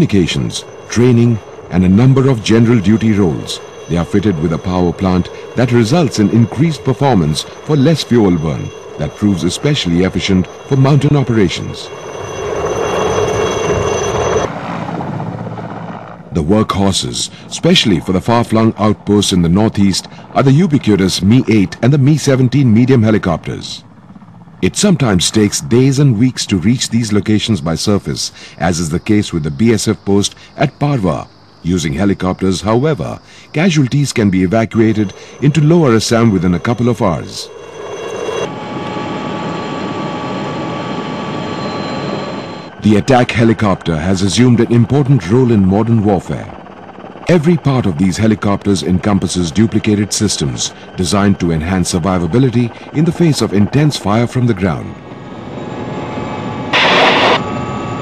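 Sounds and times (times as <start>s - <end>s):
helicopter rotor rush: 0.0s - 58.0s
helicopter turbine whine: 0.0s - 58.0s.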